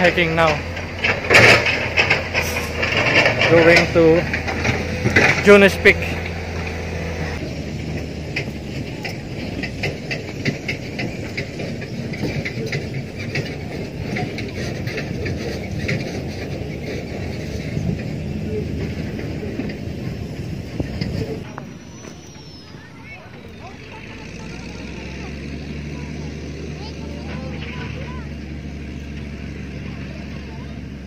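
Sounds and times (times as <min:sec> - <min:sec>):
wind buffeting microphone: 0:00.0 - 0:25.7.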